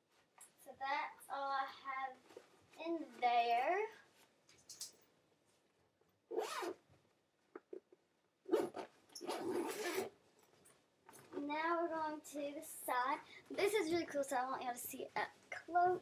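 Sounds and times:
child's voice: 0.6 - 2.2, 2.8 - 4.1, 11.4 - 16.0
backpack zipper rasping: 6.3 - 6.8, 8.5 - 10.1.

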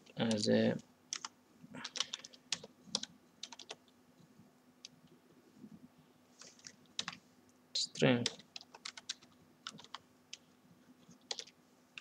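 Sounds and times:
typing on computer keyboard: 1.1 - 3.8, 6.4 - 7.2, 8.2 - 10.4, 11.2 - 11.6.

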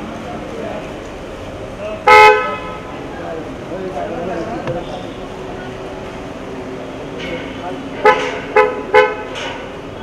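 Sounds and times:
people's voices: 0.0 - 10.0
car horn honk: 2.0 - 2.9, 4.7 - 5.3, 8.0 - 9.4.

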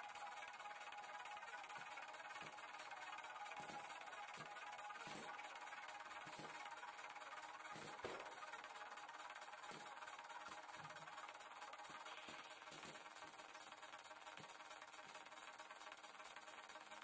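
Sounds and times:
faint background music: 0.0 - 17.0.

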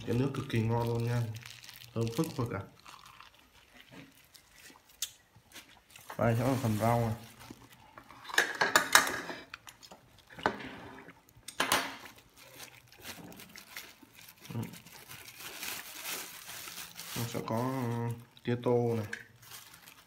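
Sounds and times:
plastic bag crinkling: 0.0 - 8.4, 12.0 - 20.0
dishes clinking: 8.3 - 9.5.

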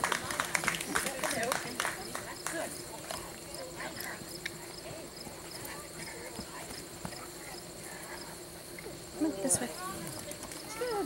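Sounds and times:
faint distant talk: 0.0 - 11.0
insects chirping: 0.0 - 11.0
steady high buzz: 0.0 - 11.0.

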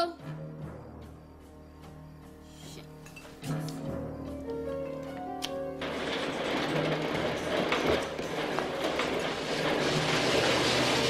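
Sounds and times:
garage door rattling rumble: 4.3 - 11.0.

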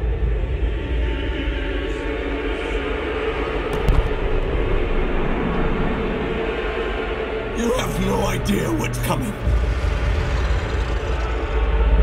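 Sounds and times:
low drone tone: 7.4 - 12.0
deep rumble: 8.3 - 12.0.

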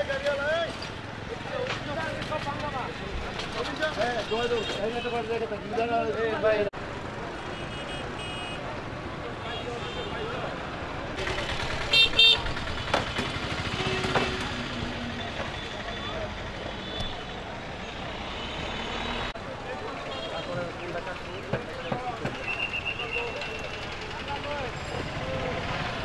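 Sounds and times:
voices: 0.0 - 18.7, 19.3 - 26.0
street traffic: 0.0 - 26.0
vehicle horn honks: 11.9 - 12.4, 13.7 - 14.6.

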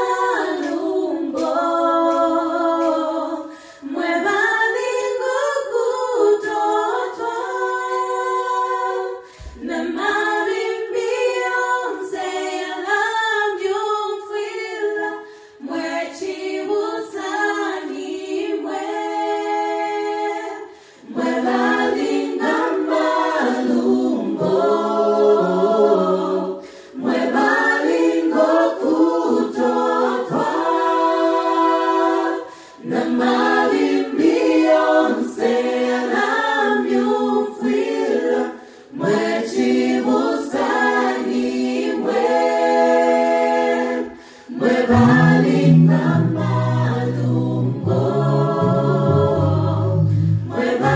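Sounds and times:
group singing a cappella: 0.0 - 50.9.

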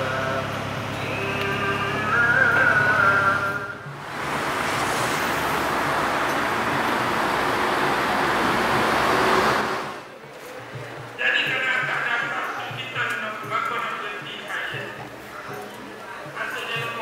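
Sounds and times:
road traffic rush: 0.0 - 10.2
quiet background music: 10.1 - 17.0.

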